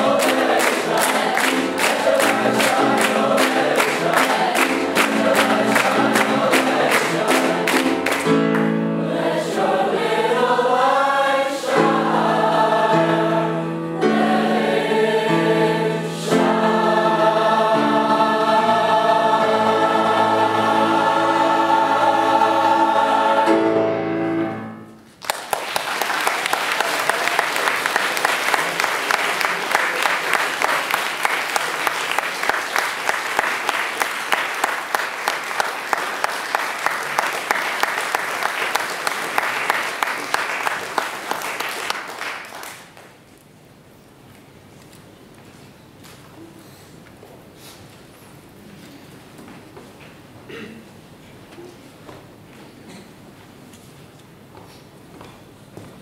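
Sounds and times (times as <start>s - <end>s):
audience applauding: 0.0s - 8.7s, 25.2s - 43.0s
choir singing: 0.0s - 24.8s.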